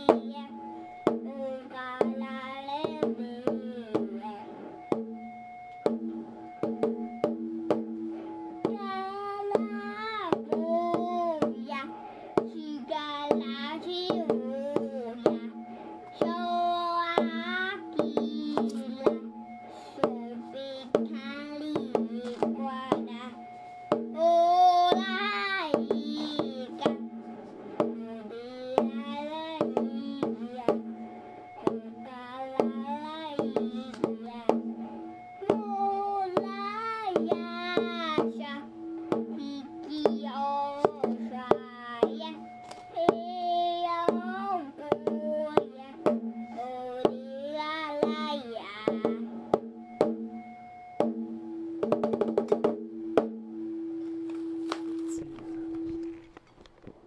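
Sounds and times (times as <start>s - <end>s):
person singing slow melody: 0.0s - 4.6s, 8.6s - 23.4s, 24.1s - 27.0s, 27.7s - 30.8s, 35.4s - 49.3s
low held tone: 0.0s - 56.4s.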